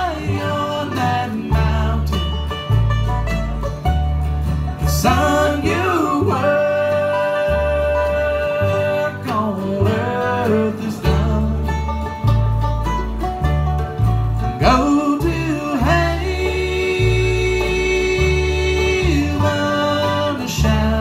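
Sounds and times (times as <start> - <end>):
person singing: 0.0 - 2.4, 4.8 - 11.8, 14.6 - 21.0
bluegrass band playing: 0.0 - 21.0.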